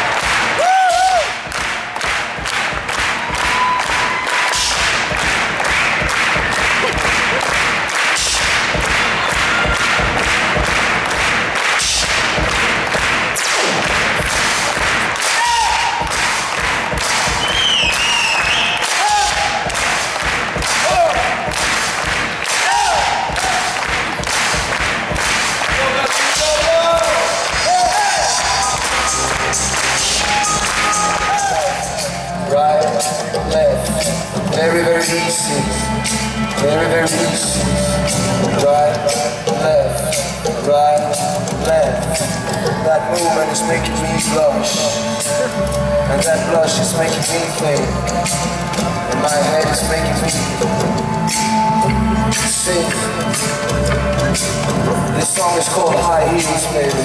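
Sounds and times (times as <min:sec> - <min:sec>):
hand claps: 0:00.0 - 0:32.0
live band music with synth: 0:01.3 - 0:57.0.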